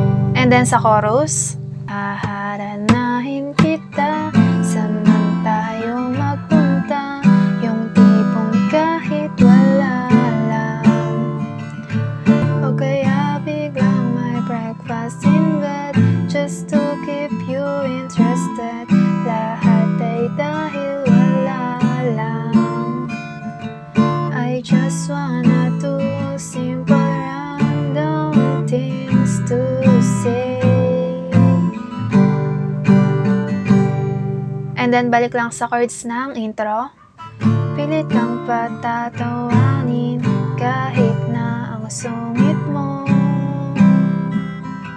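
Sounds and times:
acoustic guitar strumming: 0.0 - 44.9.

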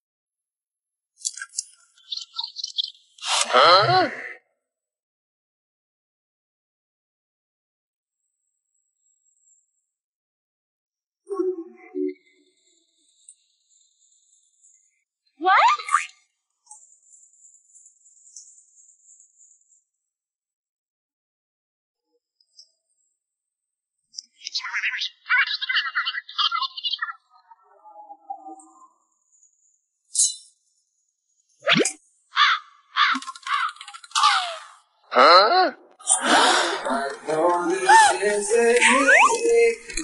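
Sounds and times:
cartoon swoop: 31.6 - 32.0, 38.8 - 39.4
cartoon chirping bursts: 38.8 - 39.5.

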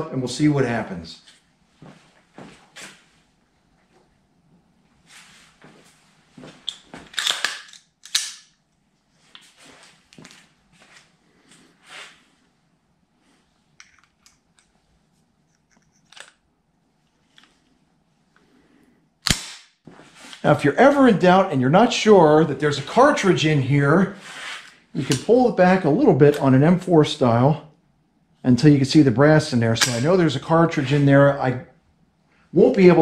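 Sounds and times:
rifle clicks and rattles: 6.6 - 8.6, 15.5 - 16.4.

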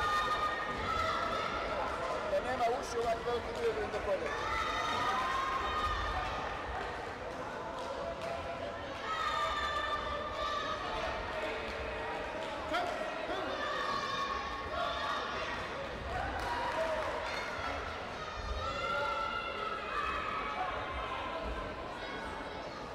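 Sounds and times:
chatter of many voices: 0.0 - 22.9.

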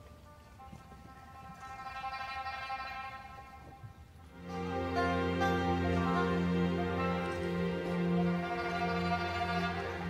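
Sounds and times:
pipa and orchestra high held note: 4.3 - 10.0.

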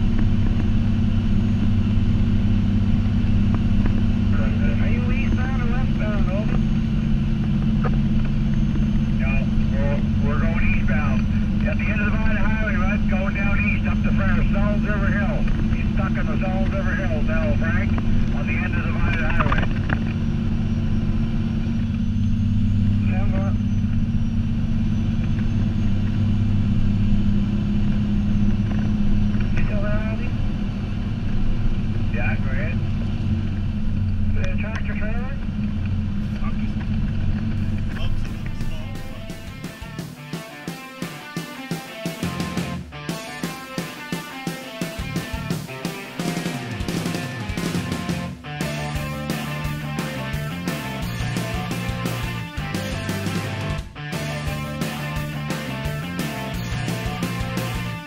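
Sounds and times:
diesel truck engine droning: 0.0 - 58.0
brief voices: 36.2 - 40.0
rhythmic background music: 37.9 - 58.0.

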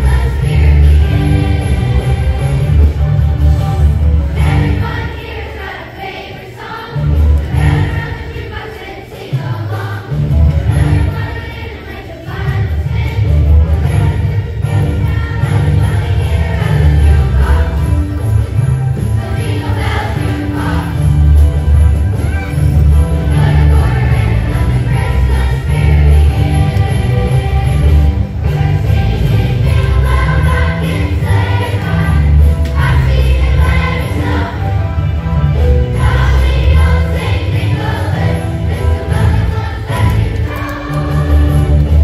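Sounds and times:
instrumental accompaniment with bass: 0.0 - 5.1, 10.1 - 11.3, 12.3 - 42.0
children's choir singing: 0.0 - 42.0.

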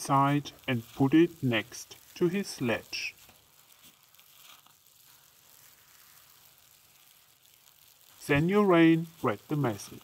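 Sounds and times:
faint steady hiss: 0.0 - 10.0.

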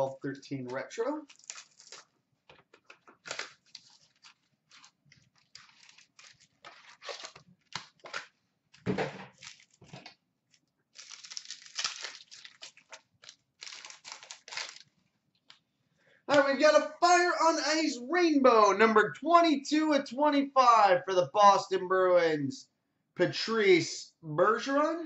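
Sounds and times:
foil packs tearing and crinkling: 1.3 - 2.1, 3.2 - 8.3, 9.3 - 10.1, 10.9 - 14.9.

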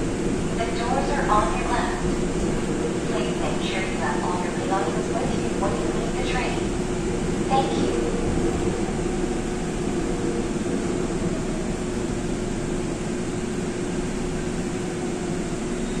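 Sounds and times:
subway car hum and rumble: 0.0 - 16.0.

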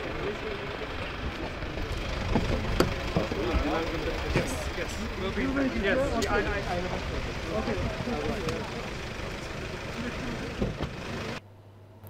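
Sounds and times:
car engine rumbling: 0.0 - 11.4
people talking: 0.0 - 11.4.

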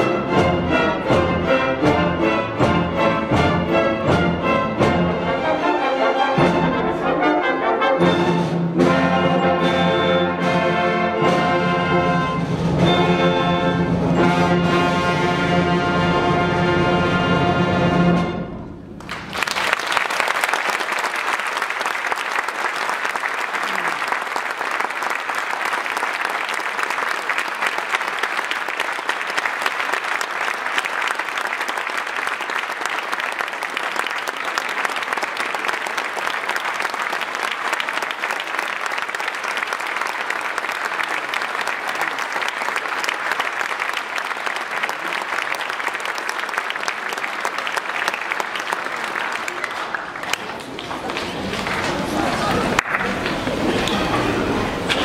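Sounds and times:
audience applauding: 19.0 - 55.0.

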